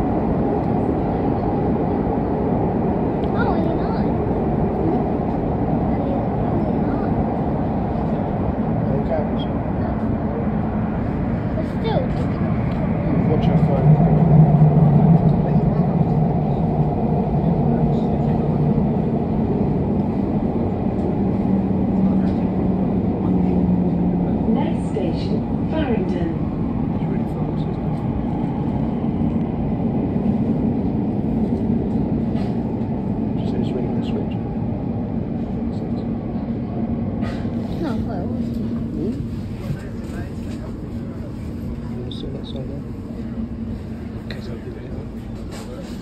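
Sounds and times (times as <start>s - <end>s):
train rumble in tunnel: 0.0s - 46.0s.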